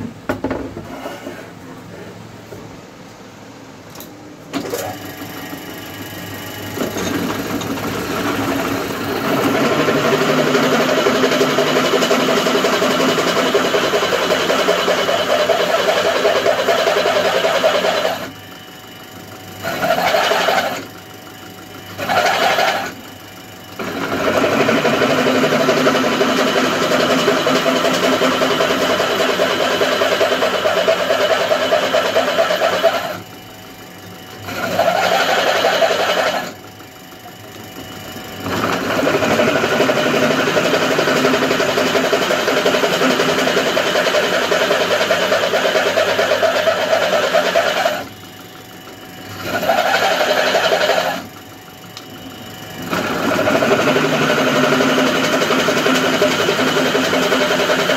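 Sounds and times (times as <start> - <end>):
drill press drilling metal: 4.0 - 18.4, 19.1 - 21.0, 21.9 - 23.1, 23.7 - 33.4, 34.3 - 48.2, 49.2 - 51.4, 52.6 - 57.9.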